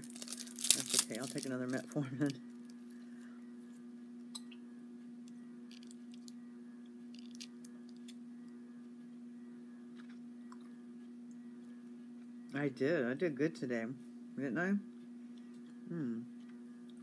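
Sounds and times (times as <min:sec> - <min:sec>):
chewing candy: 0:00.0 - 0:01.6, 0:07.2 - 0:08.2
small clicks and crunches: 0:00.0 - 0:02.8, 0:05.2 - 0:06.4, 0:07.1 - 0:08.2
steady low hum: 0:00.0 - 0:17.0.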